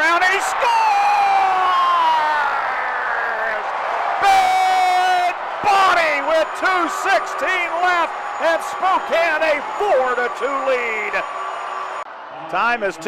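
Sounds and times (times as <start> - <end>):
arena crowd cheering: 0.0 - 13.0.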